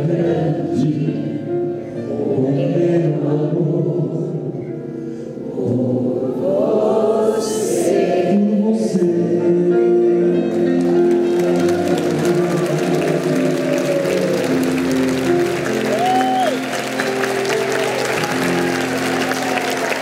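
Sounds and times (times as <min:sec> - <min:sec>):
audience applauding: 0:10.6 - 0:20.0
audience cheering: 0:10.8 - 0:20.0.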